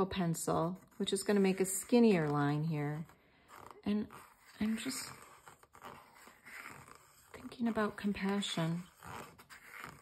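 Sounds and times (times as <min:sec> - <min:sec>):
pencil scratching on paper: 0:00.0 - 0:10.0.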